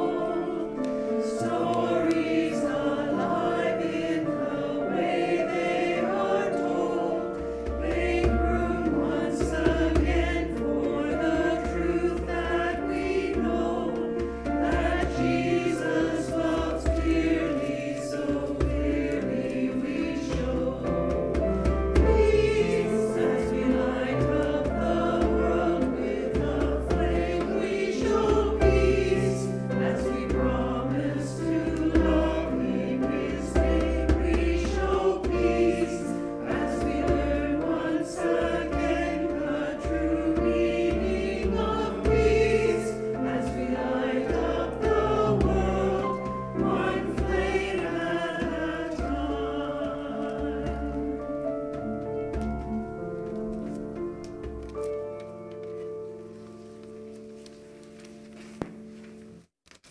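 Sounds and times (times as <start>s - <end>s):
congregation singing a hymn: 0.0s - 57.4s
instrumental accompaniment: 0.0s - 59.5s.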